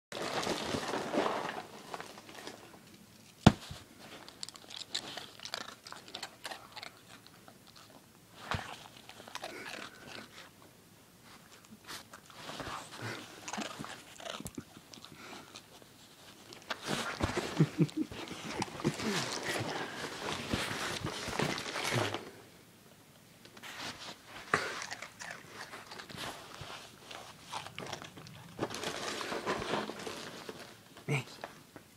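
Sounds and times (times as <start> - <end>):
dog crunching cereal: 0.1 - 10.5, 11.3 - 22.4, 24.4 - 31.3.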